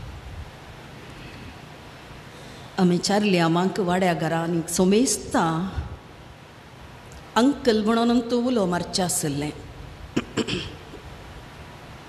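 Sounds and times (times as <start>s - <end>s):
low room noise: 0.0s - 12.0s
short breath: 2.3s - 2.8s.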